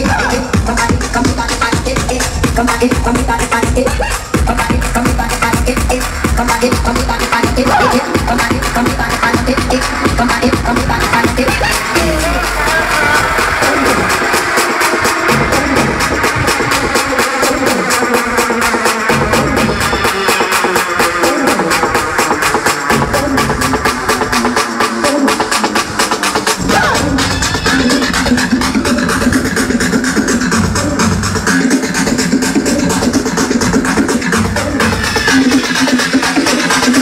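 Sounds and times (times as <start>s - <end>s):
electronic dance music: 0.0s - 37.0s.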